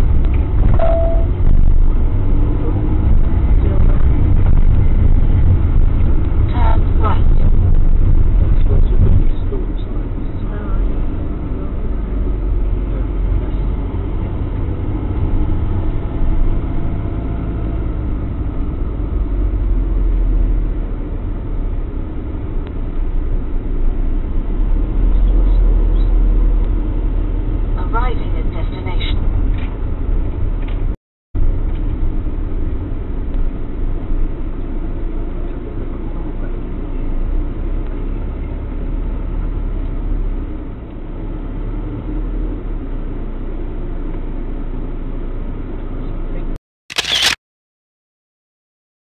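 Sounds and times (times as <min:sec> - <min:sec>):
engine and road rumble: 0:00.0 - 0:47.4.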